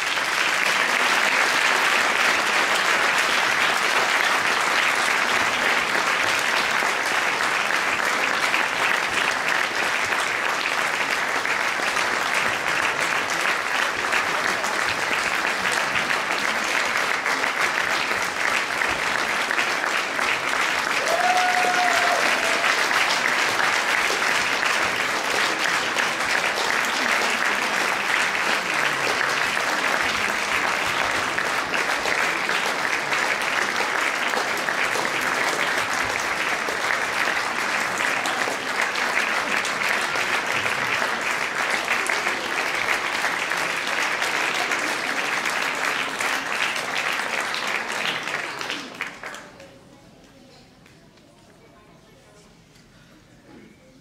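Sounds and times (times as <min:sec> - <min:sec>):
audience applauding: 0:00.0 - 0:49.7.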